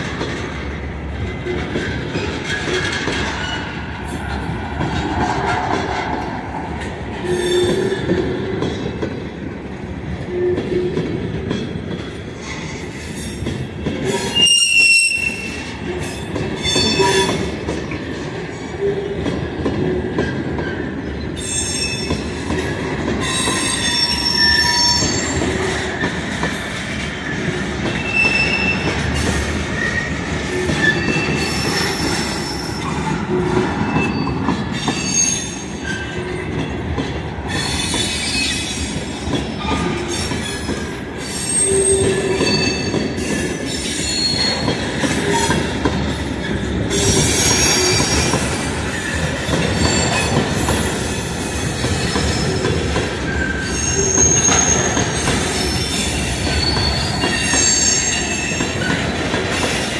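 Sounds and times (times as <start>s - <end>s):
steel wheels rumbling on rail: 0.0s - 59.9s
high-pitched wheel squeals: 14.2s - 15.7s, 23.2s - 25.4s, 41.3s - 43.4s, 53.3s - 58.7s.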